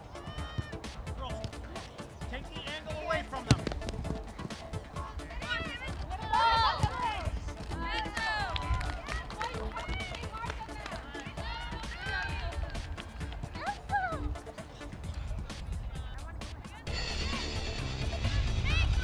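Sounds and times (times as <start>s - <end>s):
people shouting and cheering: 0.0s - 1.4s, 5.0s - 14.8s, 15.9s - 19.0s.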